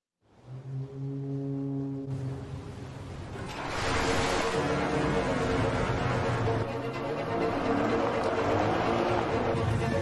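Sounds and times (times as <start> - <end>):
ship's horn low note: 0.4 - 2.8.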